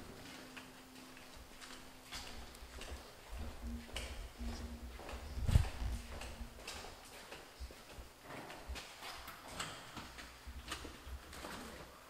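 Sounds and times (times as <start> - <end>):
footsteps in a hallway: 0.0 - 12.0.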